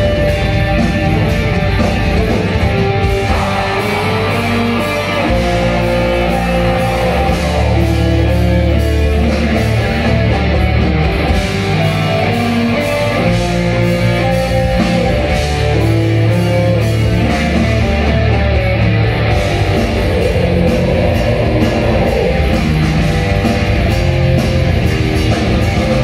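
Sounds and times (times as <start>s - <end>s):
live heavy metal band: 0.0s - 26.0s.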